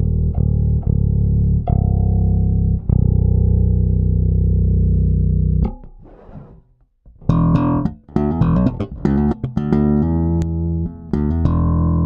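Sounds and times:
low plucked electric bass note: 0.0 - 6.0, 7.3 - 12.0.

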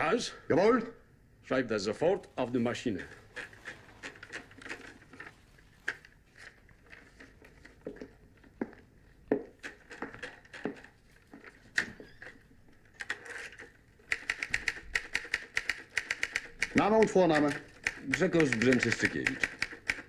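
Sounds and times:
typewriter keys clacking: 13.0 - 20.0.

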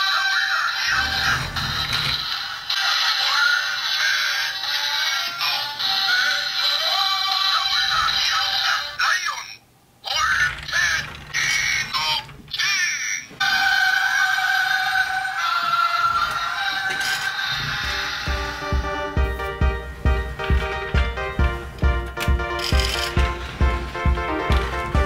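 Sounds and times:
electronic music with synthesized vocals: 13.4 - 19.4.

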